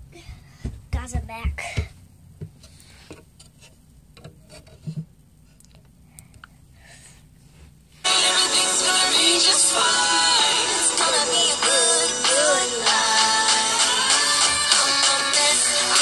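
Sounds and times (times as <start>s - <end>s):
song with sung vocals: 8.0s - 16.0s.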